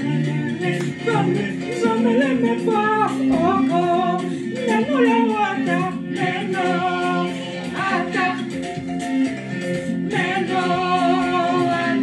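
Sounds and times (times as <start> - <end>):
person singing gospel song: 0.0 - 8.8, 9.9 - 12.0.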